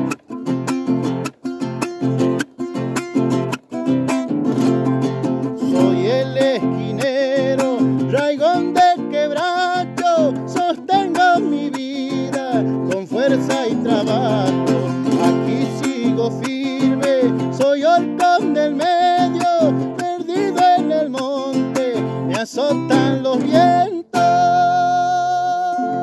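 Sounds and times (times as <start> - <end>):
man singing folk song: 0.0 - 26.0
strummed acoustic guitar: 0.0 - 26.0.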